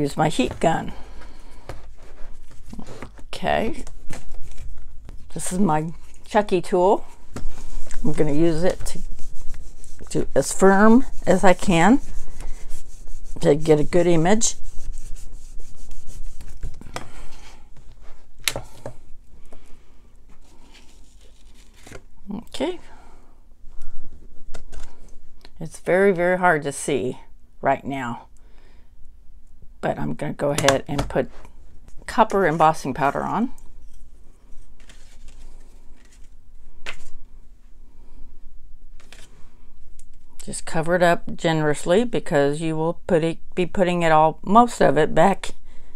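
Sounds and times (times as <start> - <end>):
paper handling: 1.2 - 5.4, 34.6 - 37.2
faint rubbing of plastic jar: 7.4 - 18.3.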